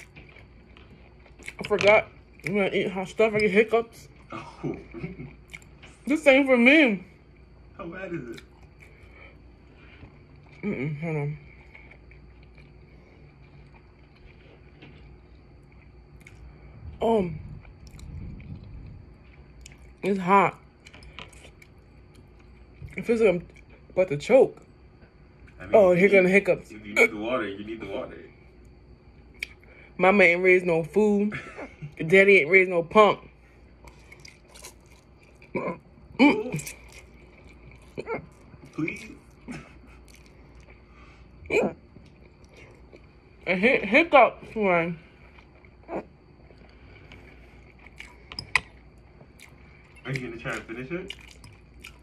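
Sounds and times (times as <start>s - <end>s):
chewing noodles: 0.0s - 2.5s, 17.6s - 20.0s, 33.8s - 35.5s, 36.6s - 40.9s, 46.4s - 52.0s.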